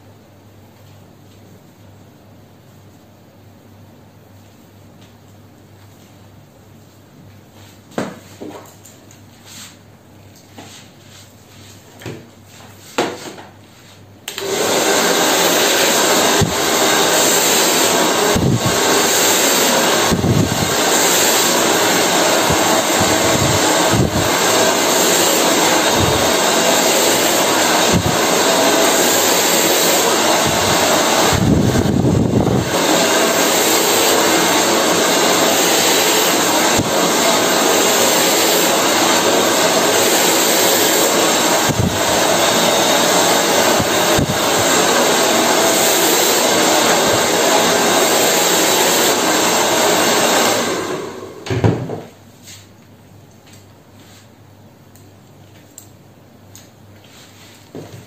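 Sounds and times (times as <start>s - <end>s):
hair dryer blowing: 14.2s - 52.1s.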